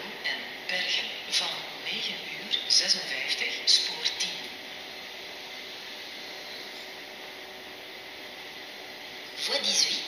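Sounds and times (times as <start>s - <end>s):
passenger train moving slowly: 0.0s - 10.0s
railway station background hiss: 0.0s - 10.0s.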